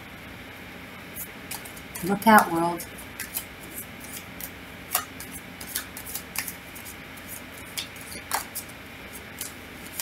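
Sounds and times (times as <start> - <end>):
cards being shuffled: 1.2 - 10.0
cards snapping against deck: 1.5 - 2.0, 3.2 - 8.7, 9.4 - 10.0.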